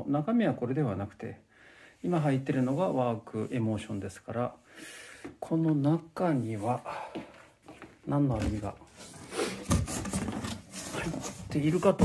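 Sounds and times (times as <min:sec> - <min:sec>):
cardboard rubbing and scraping: 0:08.9 - 0:12.0.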